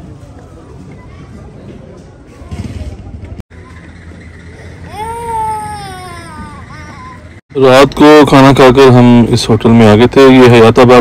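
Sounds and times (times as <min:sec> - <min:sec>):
background noise: 0:00.0 - 0:11.0
young child crying: 0:04.8 - 0:07.4.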